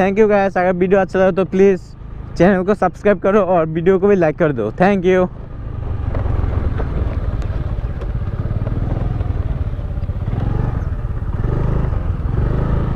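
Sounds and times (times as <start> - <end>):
scooter engine running: 4.7 - 12.9.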